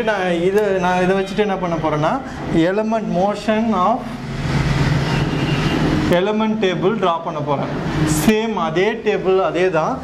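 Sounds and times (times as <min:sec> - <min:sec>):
steady rushing noise: 0:03.7 - 0:08.9.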